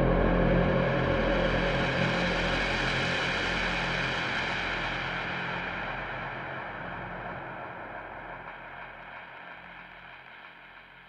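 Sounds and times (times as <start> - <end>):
ambient electronic drone: 0.0 - 10.7.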